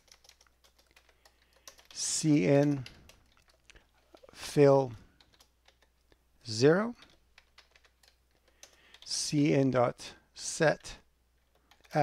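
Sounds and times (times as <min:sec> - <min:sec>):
faint keyboard typing: 0:00.0 - 0:09.6, 0:10.8 - 0:12.0.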